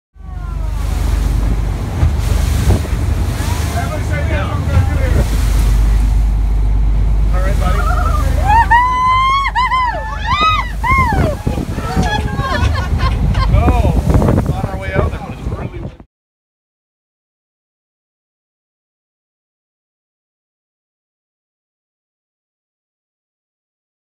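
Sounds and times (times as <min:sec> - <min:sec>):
water rushing along boat hull: 0:00.1 - 0:16.1
voices: 0:00.2 - 0:01.4, 0:02.3 - 0:06.1, 0:07.3 - 0:16.0
wind buffeting microphone: 0:00.2 - 0:16.1.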